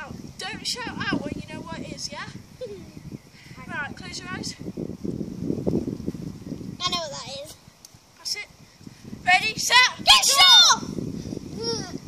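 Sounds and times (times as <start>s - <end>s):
girl laughing: 2.6s - 3.0s.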